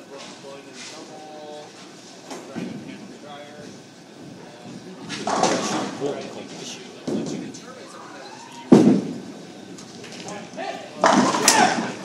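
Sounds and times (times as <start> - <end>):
bowling balls rolling: 3.7 - 10.3, 10.9 - 12.0
people talking: 4.4 - 8.7, 9.5 - 12.0.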